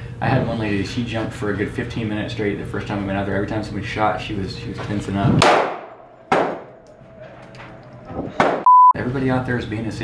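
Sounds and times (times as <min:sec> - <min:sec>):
pistol shot echoing indoors: 0:05.4 - 0:06.8.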